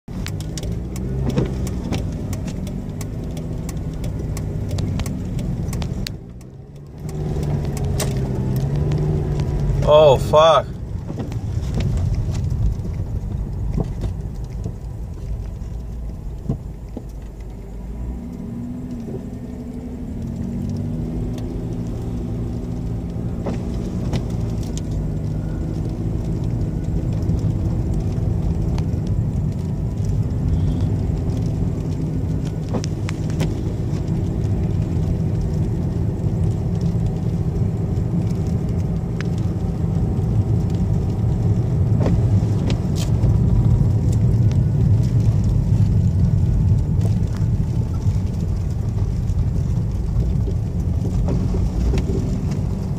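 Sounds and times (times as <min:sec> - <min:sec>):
car engine and road rumble: 0:00.0 - 0:52.9
faint clicks: 0:00.2 - 0:09.8.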